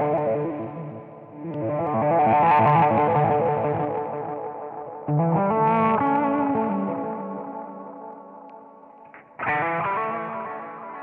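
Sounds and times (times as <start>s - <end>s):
pulsing electric guitar chords: 0.0s - 11.0s.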